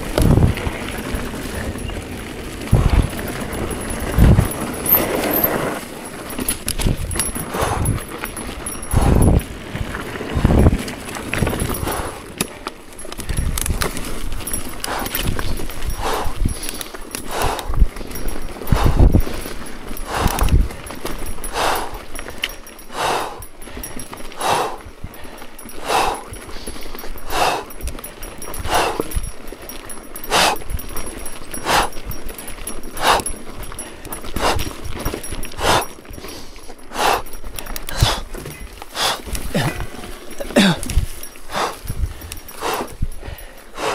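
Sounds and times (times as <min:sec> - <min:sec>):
bike thudding over rough trail: 0:00.0 - 0:43.7
person breathing hard: 0:02.7 - 0:03.4, 0:07.1 - 0:09.4, 0:11.7 - 0:12.3, 0:14.8 - 0:30.8, 0:31.5 - 0:43.9.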